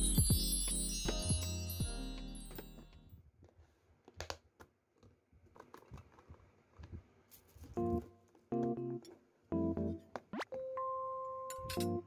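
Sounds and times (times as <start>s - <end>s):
keyboard background music: 0.0s - 3.0s, 7.8s - 12.0s.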